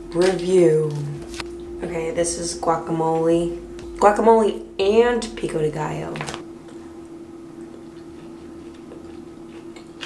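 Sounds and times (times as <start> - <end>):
steady low hum: 0.0 - 10.0
person chewing food: 6.6 - 10.0.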